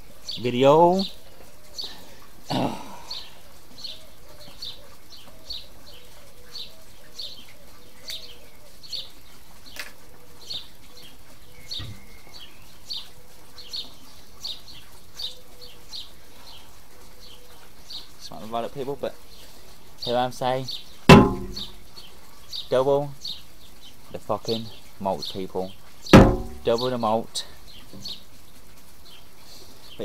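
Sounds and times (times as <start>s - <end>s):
small bird chirping: 0.0s - 30.0s.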